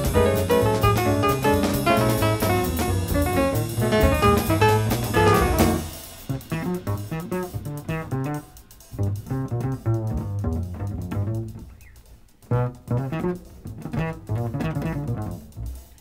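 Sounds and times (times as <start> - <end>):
double bass: 0.0 - 16.0
small-group jazz from vinyl: 0.0 - 16.0.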